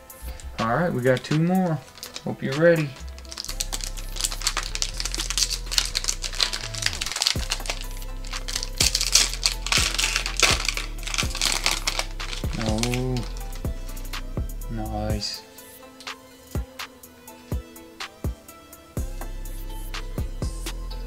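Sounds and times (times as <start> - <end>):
background music with bass: 0.0 - 21.0
foil wrapper crinkling and tearing: 1.8 - 13.6.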